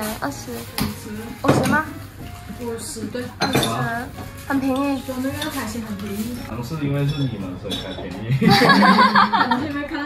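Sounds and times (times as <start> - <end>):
tableware clinking: 3.2 - 9.8.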